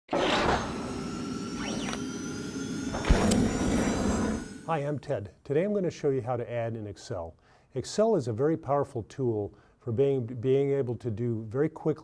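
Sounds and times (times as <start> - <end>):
rising and falling glide: 0.1 - 4.7.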